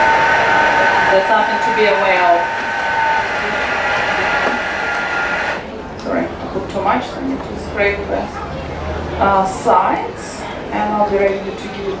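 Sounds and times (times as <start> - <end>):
blender whirring: 0.0 - 5.6.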